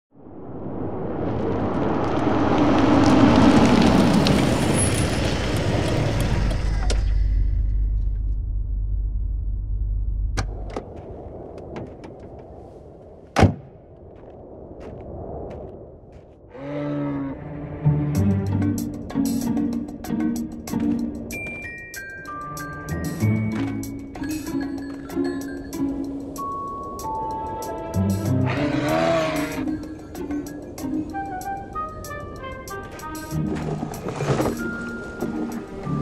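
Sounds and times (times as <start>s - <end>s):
music: 17.4s - 36.0s.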